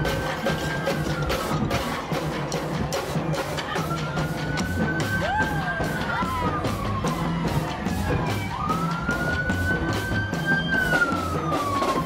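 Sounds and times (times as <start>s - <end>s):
wailing siren: 0.0s - 2.1s, 3.7s - 12.0s
music with steady beat: 0.0s - 12.0s.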